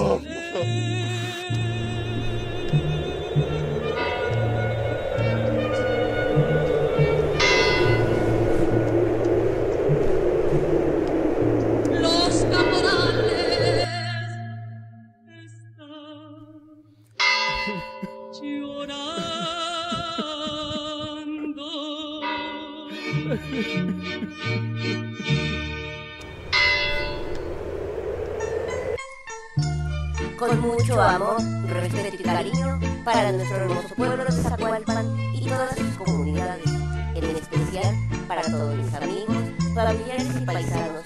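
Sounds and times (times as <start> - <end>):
low sustained music notes: 1.4 - 14.1, 26.2 - 32.8
steady background hiss: 1.8 - 13.9, 26.2 - 29.0
bell ringing: 3.0 - 8.3, 17.2 - 19.0, 26.4 - 27.4.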